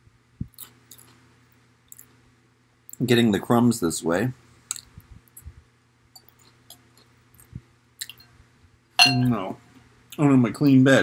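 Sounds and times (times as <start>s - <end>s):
spoon clicking on glass bowl: 9.0s - 9.4s.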